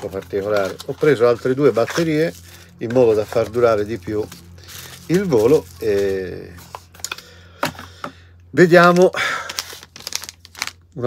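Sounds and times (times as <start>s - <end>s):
packaging crinkling: 0.0s - 7.4s, 8.6s - 11.0s.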